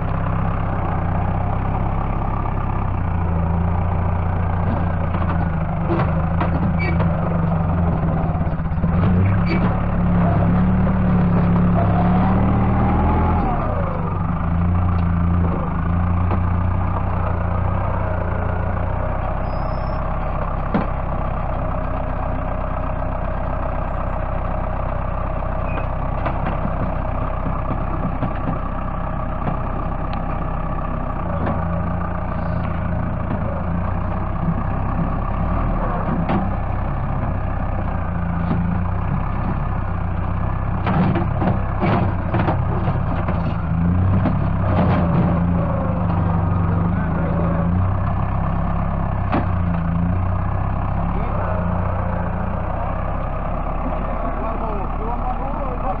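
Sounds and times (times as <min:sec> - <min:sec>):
tractor diesel engine running: 0:00.0 - 0:56.0
loader bucket clattering knocks: 0:03.2 - 0:13.6, 0:14.6 - 0:18.4, 0:25.7 - 0:30.5, 0:32.8 - 0:51.1.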